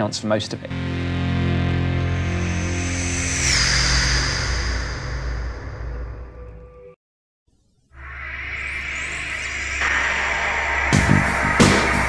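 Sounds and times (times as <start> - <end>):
low rumble: 0.9 - 6.5
swooshing sound effect: 2.1 - 6.4, 8.0 - 12.0.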